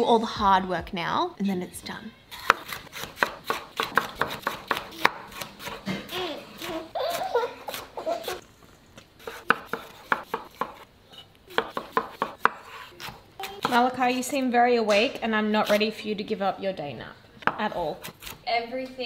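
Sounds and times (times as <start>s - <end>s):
knife chopping on wooden board: 2.4s - 7.9s, 9.2s - 10.8s, 11.6s - 13.8s.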